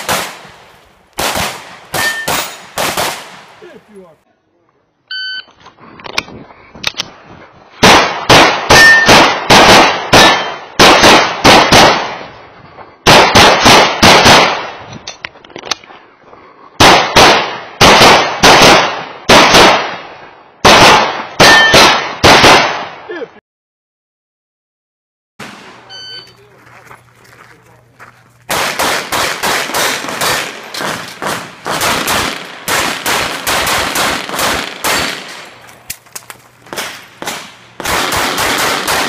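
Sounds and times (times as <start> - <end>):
pistol firing fast shots: 0.0 - 3.6, 7.8 - 12.2, 13.1 - 14.7, 16.8 - 20.0, 20.6 - 23.0, 28.5 - 35.6, 36.7 - 39.0
shot timer beep: 5.1 - 5.5, 25.8 - 26.4.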